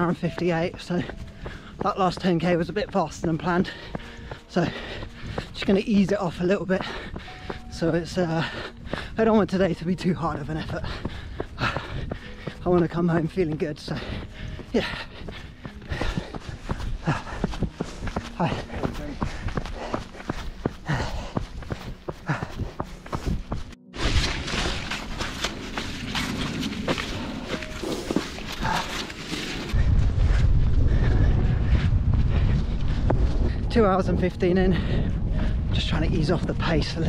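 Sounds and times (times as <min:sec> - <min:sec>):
person speaking: 0:00.0 - 0:05.0, 0:05.6 - 0:11.0, 0:11.6 - 0:15.1, 0:17.0 - 0:20.0
running footsteps on trail: 0:00.0 - 0:37.0
wind buffeting microphone: 0:00.7 - 0:27.8, 0:29.6 - 0:37.0.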